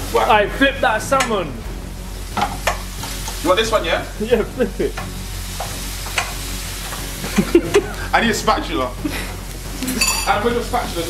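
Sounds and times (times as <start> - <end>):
food sizzling in oil: 0.0 - 11.0
utensil clicking against pan: 2.4 - 3.4, 4.4 - 8.0.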